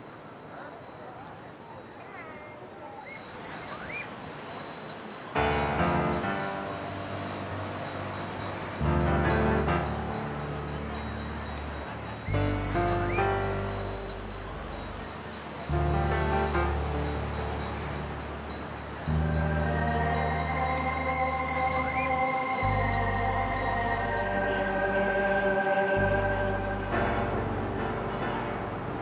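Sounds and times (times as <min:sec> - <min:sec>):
slow sustained music chords: 0:05.3 - 0:29.0
deep bass notes: 0:05.4 - 0:29.0.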